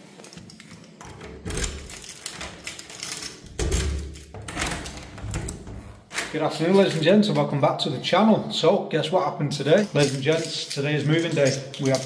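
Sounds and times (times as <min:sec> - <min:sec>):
key turning in lock: 0:00.3 - 0:06.4.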